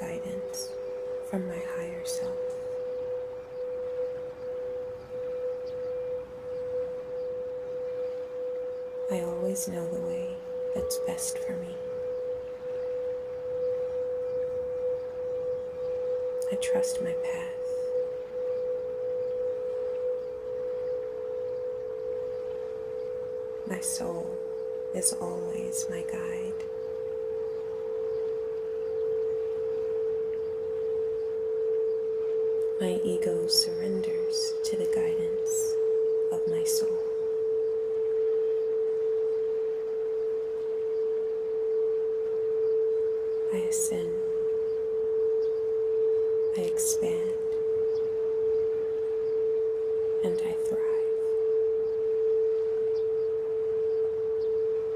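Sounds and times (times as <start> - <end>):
singing bowl humming tone: 0.0 - 54.9.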